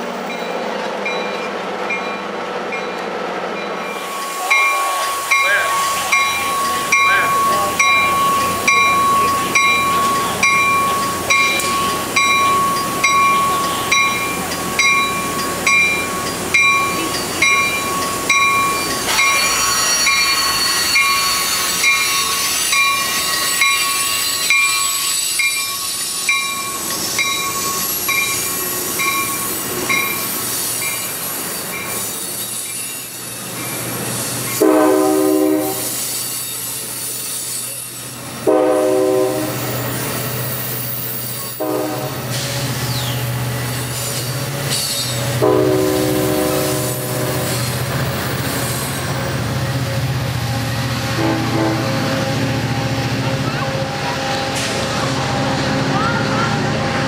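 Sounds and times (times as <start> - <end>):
train bell ringing: 0.0 - 33.9
train wheels hissing and screeching: 2.5 - 57.0
train horn blasts: 34.6 - 36.0, 38.4 - 39.7, 41.6 - 42.3, 45.3 - 47.5, 51.1 - 52.3.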